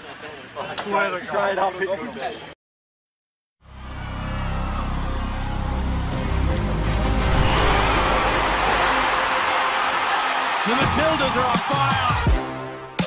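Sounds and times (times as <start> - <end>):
background music: 3.7 - 13.0.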